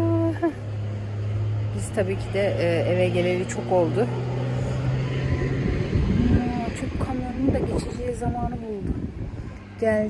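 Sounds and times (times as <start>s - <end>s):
low engine-like hum: 0.0s - 10.0s
low rumbling background: 0.0s - 10.0s.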